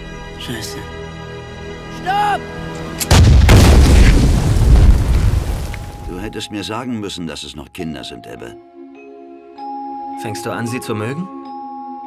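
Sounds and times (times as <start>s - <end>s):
explosion boom: 3.1s - 6.2s
sharp hit: 3.1s - 6.2s.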